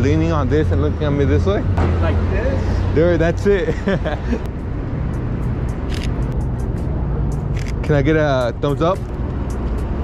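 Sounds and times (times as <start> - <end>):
city street traffic rumble: 0.0 - 10.0
camera shutter clicks: 5.9 - 6.2.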